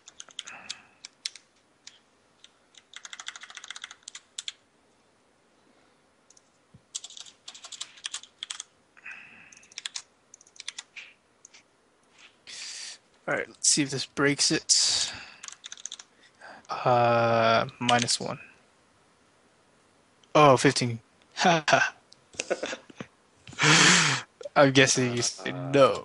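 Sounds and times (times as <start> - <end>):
keyboard typing: 0.0 - 4.6, 6.3 - 8.7, 9.5 - 11.6, 15.4 - 16.1.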